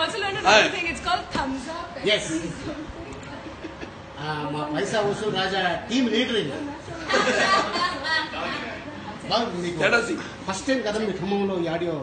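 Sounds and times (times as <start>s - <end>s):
laughter: 7.0s - 8.3s.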